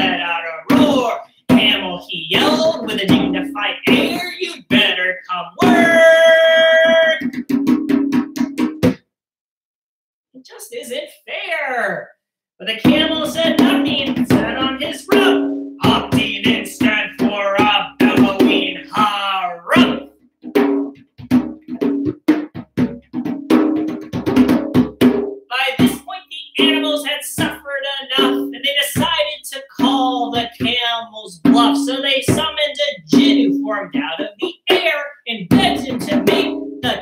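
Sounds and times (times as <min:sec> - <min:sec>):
djembe hand drumming: 0:00.0 - 0:04.9, 0:05.6 - 0:09.0, 0:12.8 - 0:25.9, 0:29.8 - 0:34.9, 0:35.5 - 0:37.0
man singing wordless melody: 0:00.0 - 0:07.3, 0:12.8 - 0:20.1, 0:28.6 - 0:37.0.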